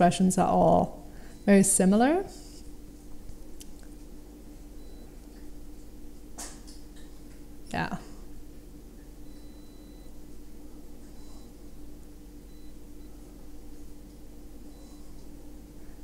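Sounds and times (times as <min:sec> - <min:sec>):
low electrical hum: 0:00.0 - 0:16.0
faint high whines: 0:09.1 - 0:16.0.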